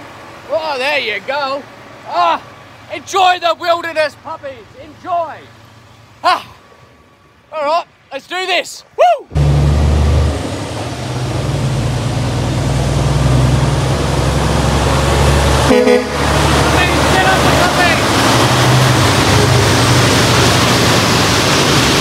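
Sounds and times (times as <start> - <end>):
truck diesel engine drone: 9.3 - 22.0
truck horn toot: 15.5 - 17.8.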